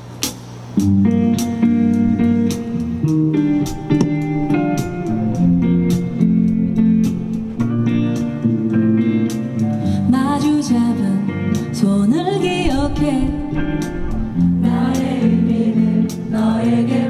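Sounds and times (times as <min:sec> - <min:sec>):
clean electric guitar chords: 0:00.8 - 0:17.0.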